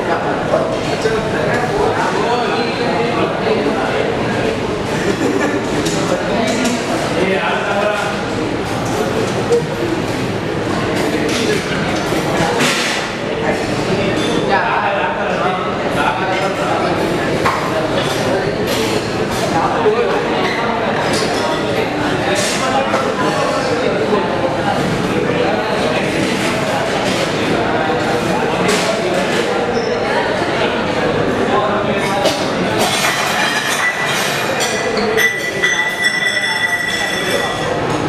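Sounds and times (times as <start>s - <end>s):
indistinct chatter of voices: 0.0s - 38.0s
thin high ring: 34.8s - 37.8s.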